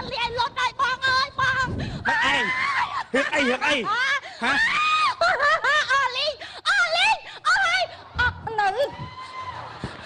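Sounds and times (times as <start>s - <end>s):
woman crying out shrilly: 2.0s - 9.4s.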